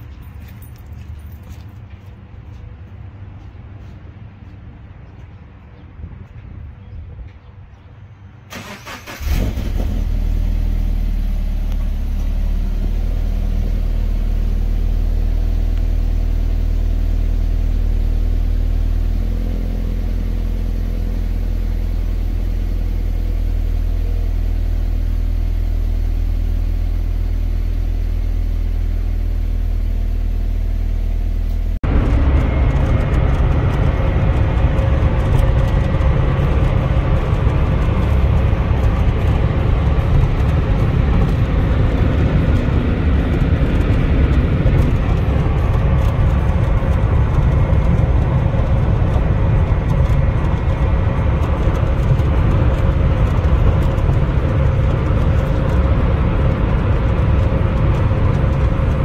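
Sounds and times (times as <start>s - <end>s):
cabin road noise at speed: 0.0s - 59.0s
engine cranking: 8.5s - 10.4s
engine fast idle: 8.5s - 12.6s.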